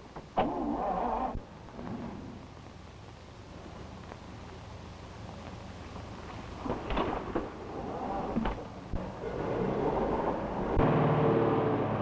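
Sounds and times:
car engine revving: 0:07.8 - 0:12.0.

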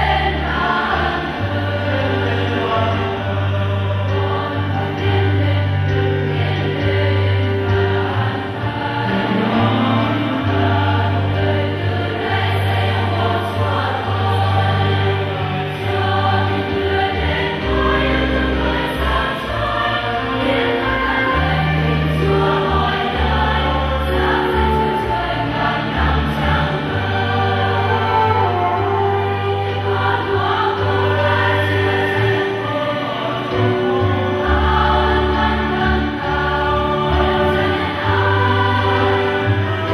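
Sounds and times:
church choir singing a hymn: 0:00.0 - 0:39.9.

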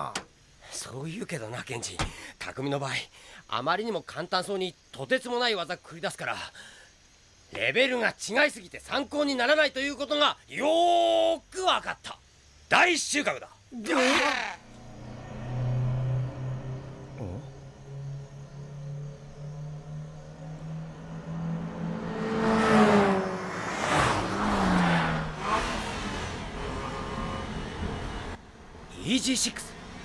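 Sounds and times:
sports car engine drone: 0:14.3 - 0:30.0
sports cars passing by: 0:14.4 - 0:28.9, 0:29.5 - 0:30.0.

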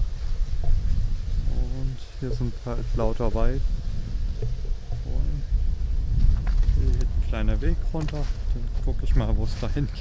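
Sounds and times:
wind rumble: 0:00.0 - 0:10.0.

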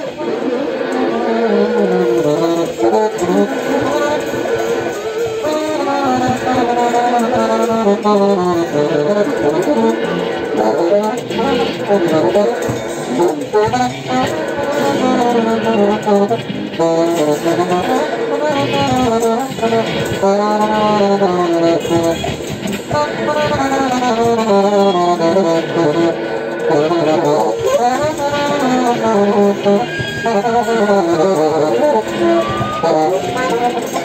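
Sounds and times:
sliding improvised pitched tones: 0:00.0 - 0:34.0.

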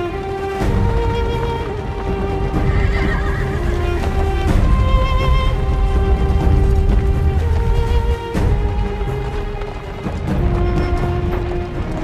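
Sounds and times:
film score of held notes: 0:00.0 - 0:12.0
horses galloping: 0:00.0 - 0:12.0
horse neighing: 0:02.6 - 0:04.2.

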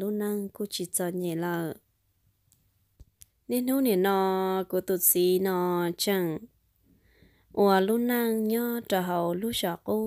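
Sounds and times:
woman narrating: 0:00.0 - 0:01.8, 0:03.5 - 0:06.5, 0:07.5 - 0:10.0.

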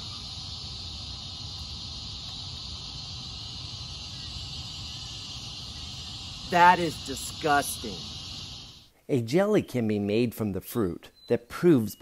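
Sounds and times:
high-pitched insect chorus: 0:00.0 - 0:08.9.

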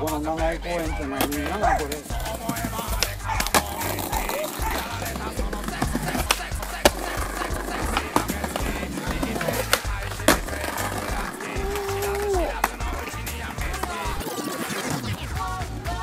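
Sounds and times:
background music: 0:00.0 - 0:16.0
skateboard deck clacks: 0:00.8 - 0:15.9
skateboard wheels rolling: 0:00.8 - 0:16.0.

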